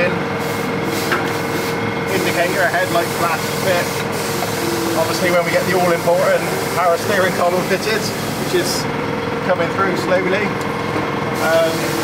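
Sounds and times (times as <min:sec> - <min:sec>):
steady mechanical hum: 0:00.0 - 0:12.0.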